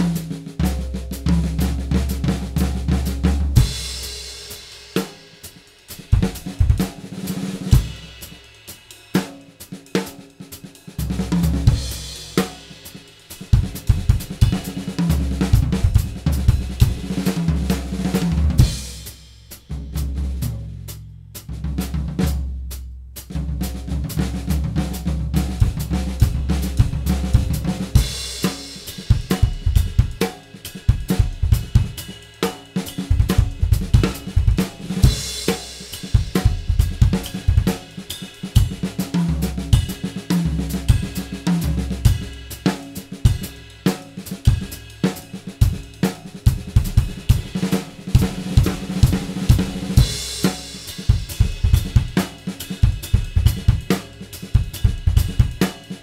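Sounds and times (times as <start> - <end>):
drum kit solo: 0.0 - 56.0.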